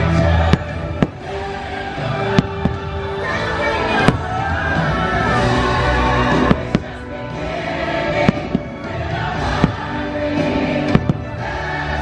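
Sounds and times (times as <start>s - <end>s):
fireworks bangs: 0.0s - 11.7s
soundtrack music: 0.0s - 12.0s.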